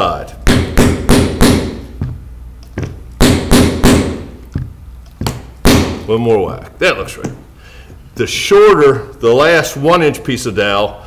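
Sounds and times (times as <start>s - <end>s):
wooden mallet knocking wood: 0.5s - 6.1s.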